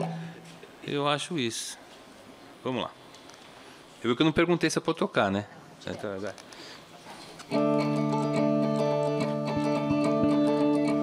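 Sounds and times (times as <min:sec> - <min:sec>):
electric guitar chord ringing: 0:00.0 - 0:00.6, 0:07.5 - 0:11.0.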